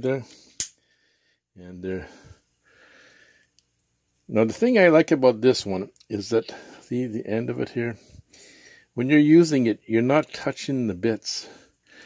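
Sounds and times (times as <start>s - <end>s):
man breathing out through nose: 2.2s - 3.5s, 8.1s - 8.9s.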